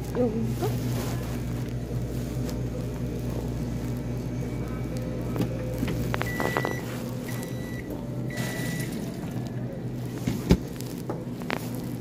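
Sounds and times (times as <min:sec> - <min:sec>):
microwave oven humming: 0:00.0 - 0:12.0
microwave beeps: 0:05.9 - 0:09.4.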